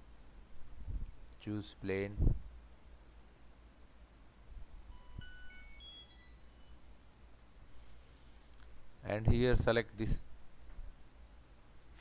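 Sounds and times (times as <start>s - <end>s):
low steady hum: 0.0s - 12.0s
short electronic beep tones: 4.9s - 6.9s.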